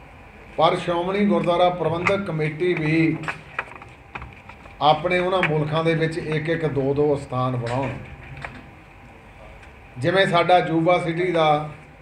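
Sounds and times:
man speaking: 0:00.6 - 0:03.3, 0:04.8 - 0:08.0, 0:09.4 - 0:11.8.

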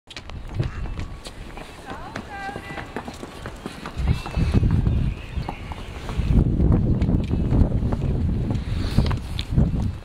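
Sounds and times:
horse hooves on brick: 0:00.1 - 0:10.0.

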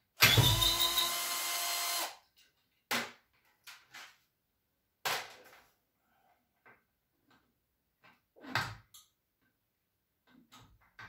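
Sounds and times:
cordless drill running: 0:00.2 - 0:02.2.

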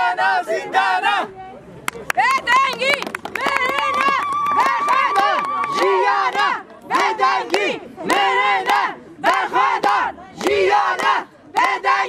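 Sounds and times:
hand-clapping: 0:01.8 - 0:11.9
women chanting and calling out: 0:02.2 - 0:12.0.

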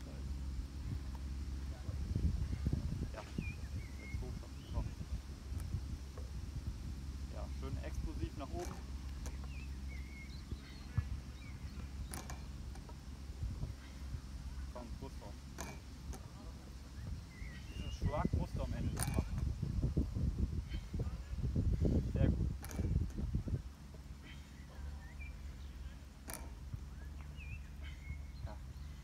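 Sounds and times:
low steady rumble: 0:00.0 - 0:29.0
sharp click of weight bar: 0:26.2 - 0:26.6.

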